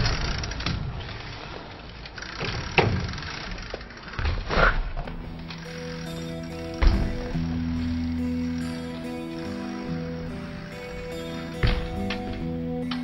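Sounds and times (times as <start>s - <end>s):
bike tyres rolling on concrete: 0.0s - 8.6s
bike landing knock: 4.2s - 5.1s, 6.8s - 7.6s, 11.6s - 12.5s
plucked guitar music: 5.1s - 13.0s.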